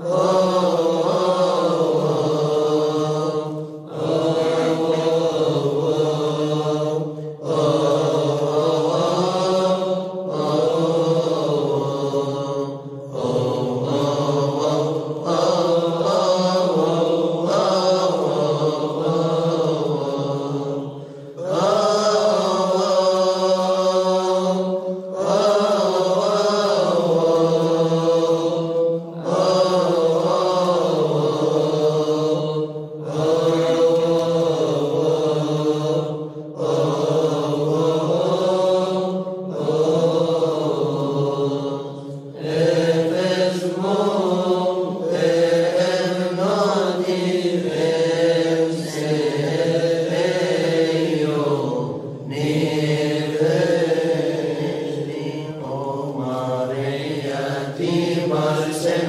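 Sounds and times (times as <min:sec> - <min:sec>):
voices chanting slow melody: 0:00.0 - 0:59.0.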